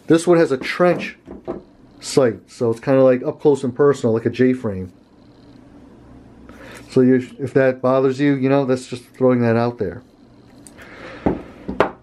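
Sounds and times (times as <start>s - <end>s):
revolver knocking on wood: 0.9s - 1.7s.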